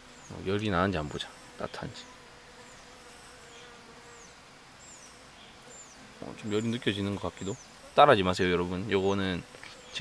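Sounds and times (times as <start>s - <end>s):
faint bees buzzing: 0.0s - 10.0s.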